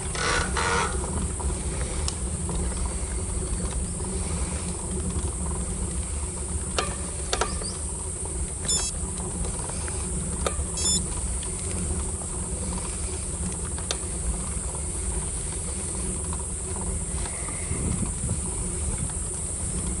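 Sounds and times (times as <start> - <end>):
bicycle rolling on asphalt: 0.0 - 20.0
high ticks of freewheel: 5.0 - 20.0.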